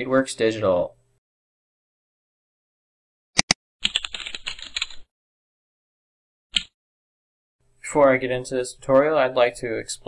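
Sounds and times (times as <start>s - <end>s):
fast keyboard typing: 3.4s - 5.1s.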